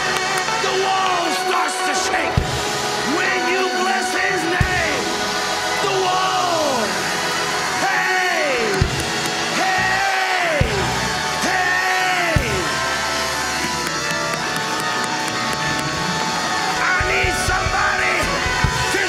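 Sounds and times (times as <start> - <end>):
loud church praise music: 0.0 - 19.0.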